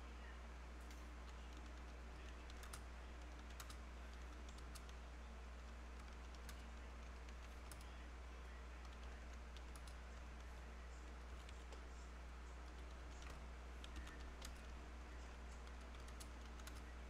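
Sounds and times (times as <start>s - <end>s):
low electrical hum: 0.0s - 17.0s
keyboard keys clicking: 0.8s - 5.0s, 5.6s - 7.9s, 8.8s - 10.7s, 12.5s - 14.7s, 15.6s - 16.9s.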